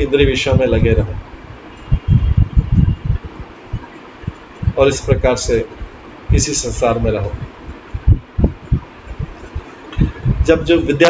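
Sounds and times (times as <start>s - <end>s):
low thumps and rumbling: 0.5s - 10.8s.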